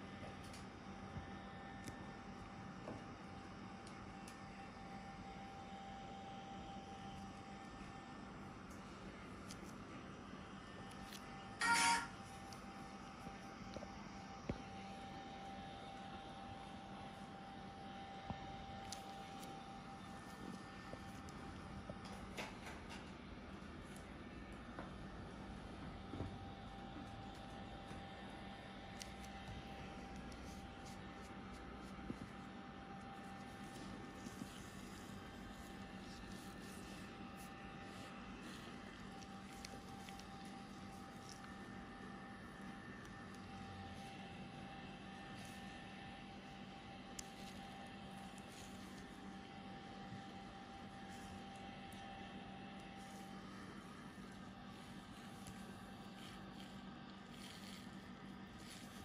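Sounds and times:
background hum and hiss: 0.0s - 59.0s.

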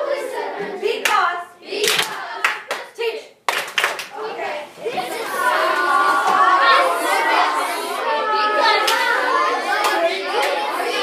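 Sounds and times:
children's voices: 0.0s - 3.4s, 4.0s - 11.0s
sharp hand claps: 1.8s - 2.9s, 3.5s - 4.1s.

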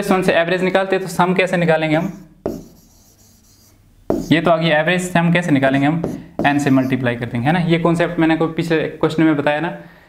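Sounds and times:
marker scratching on whiteboard: 2.0s - 4.5s, 5.7s - 7.0s
marker tip tapping whiteboard: 2.4s - 3.2s, 4.1s - 4.4s, 5.8s - 6.8s.

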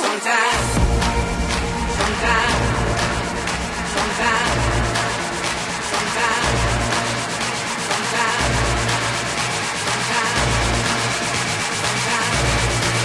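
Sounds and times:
deep bass note: 0.6s - 9.3s
fast-pulsing synth texture: 0.6s - 13.0s.

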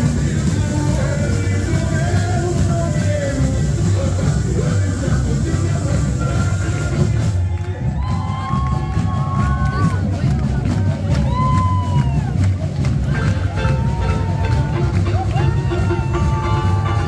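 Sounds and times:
crowd voices and cheering: 0.0s - 17.0s
samba music with drums: 0.0s - 17.0s.

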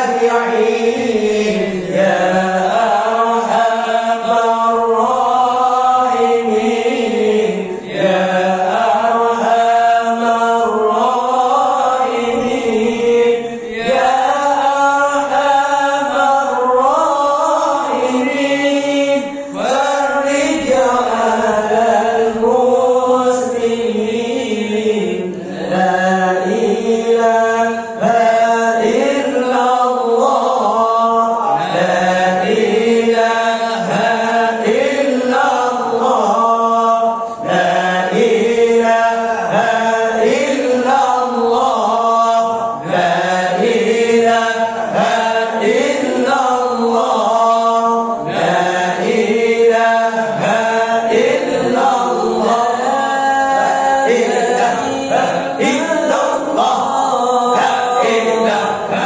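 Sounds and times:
men chanting through microphones: 0.0s - 59.0s.

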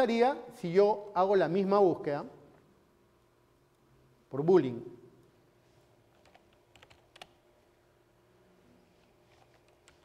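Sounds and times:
keyboard typing: 6.1s - 7.4s, 9.3s - 10.0s.

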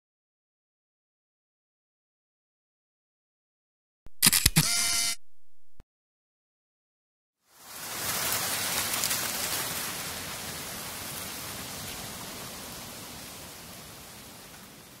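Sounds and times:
rain-like hiss of noise: 7.4s - 15.0s.

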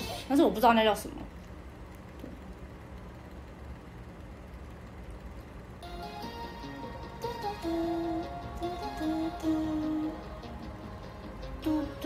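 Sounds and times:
music: 5.8s - 12.0s.

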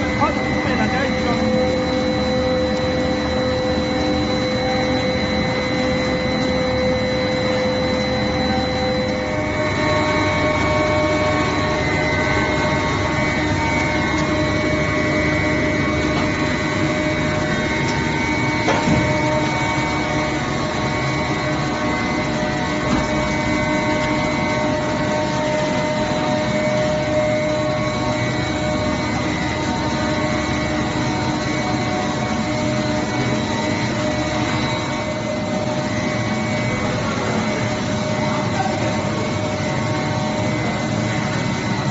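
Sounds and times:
recycling machine noise: 0.0s - 41.9s
whining motor tones: 0.0s - 41.9s.

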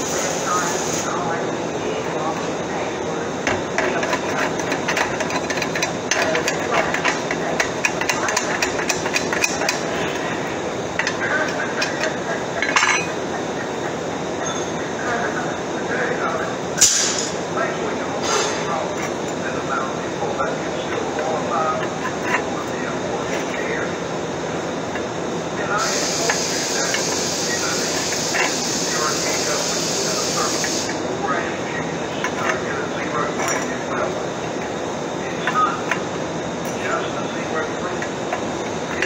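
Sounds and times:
workshop background noise: 0.0s - 39.0s
steel tubes clinking on metal table: 11.0s - 13.2s, 33.3s - 33.8s.

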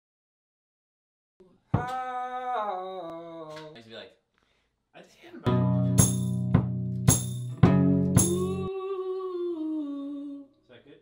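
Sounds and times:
man humming: 8.2s - 10.5s.

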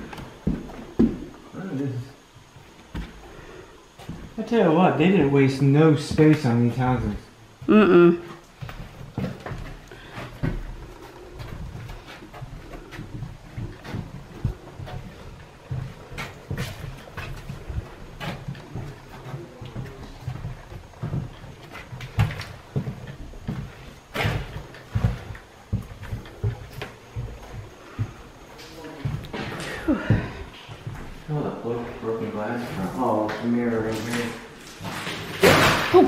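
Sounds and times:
footsteps on bare floor: 0.0s - 35.8s.

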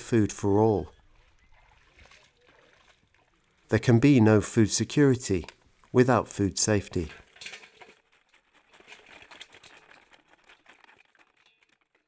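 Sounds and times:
prawns crackling and rustling: 7.1s - 12.0s.

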